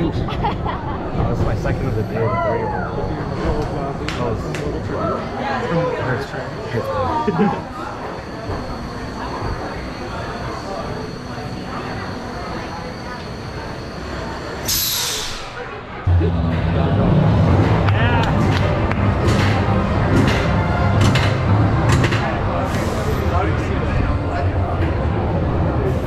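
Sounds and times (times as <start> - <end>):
voices: 0.0 - 26.0.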